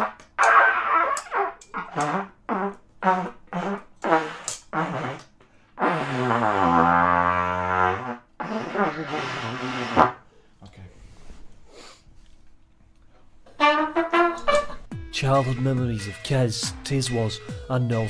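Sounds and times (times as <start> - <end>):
trumpet blown unskilfully: 0.0 - 10.2, 13.5 - 18.0.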